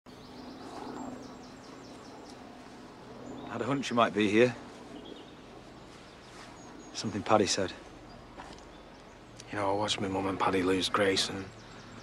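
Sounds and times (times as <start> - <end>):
small birds chirping: 0.1 - 12.0.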